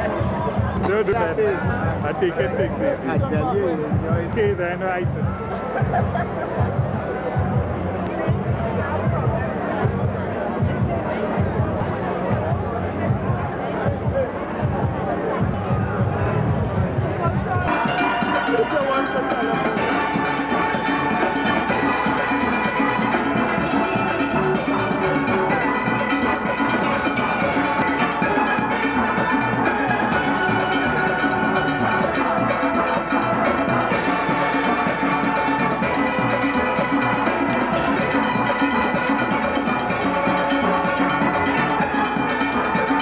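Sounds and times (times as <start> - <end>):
low bass pan notes: 0.0 - 43.0
steel band playing: 17.0 - 43.0.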